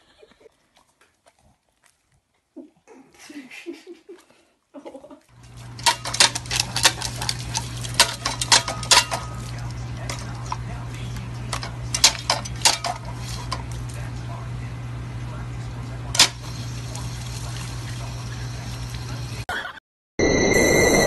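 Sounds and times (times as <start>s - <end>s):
steady low hum: 5.3s - 19.5s
metal pedal clicks and clanks: 11.5s - 13.1s.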